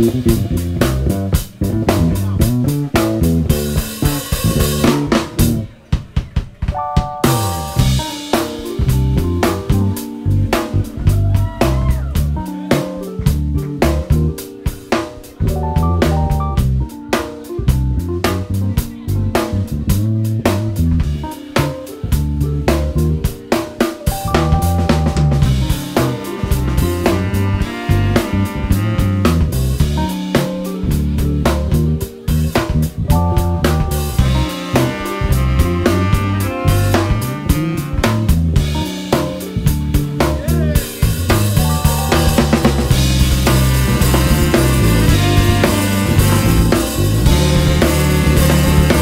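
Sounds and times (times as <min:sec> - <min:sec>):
electric bass line: 0:00.0 - 0:05.8, 0:07.2 - 0:23.5, 0:24.1 - 0:49.0
drum kit groove: 0:00.0 - 0:49.0
jazz band playing: 0:00.0 - 0:49.0
keyboard: 0:00.0 - 0:49.0.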